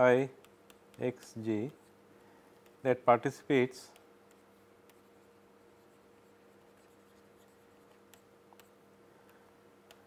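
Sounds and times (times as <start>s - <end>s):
faint steady hum: 0.0s - 10.0s
stylus writing on a tablet: 3.9s - 8.8s.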